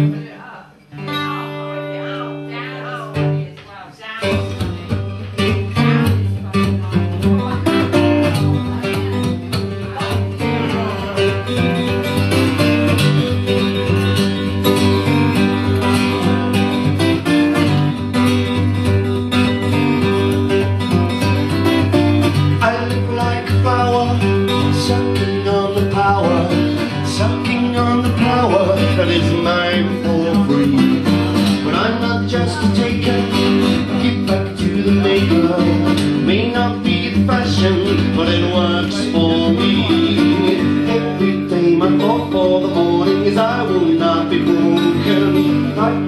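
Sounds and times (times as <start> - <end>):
acoustic guitar playing: 0.0 - 46.0.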